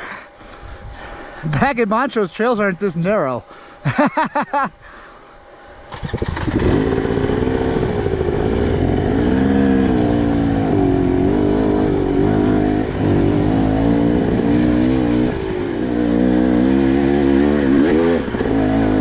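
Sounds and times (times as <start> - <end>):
dirt bike engines revving: 6.1 - 19.0.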